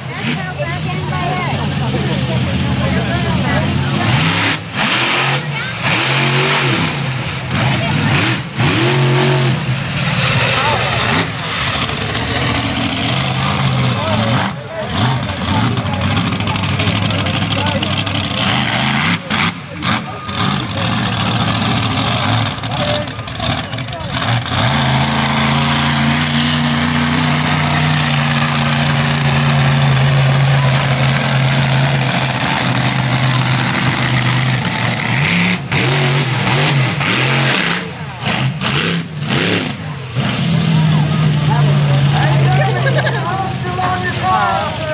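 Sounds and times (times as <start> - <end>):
monster truck engine revving: 0.0 - 44.9.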